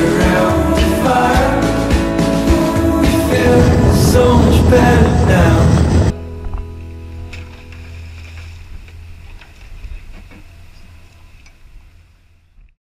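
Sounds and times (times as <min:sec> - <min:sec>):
boat engine rumbling: 0:02.8 - 0:12.5.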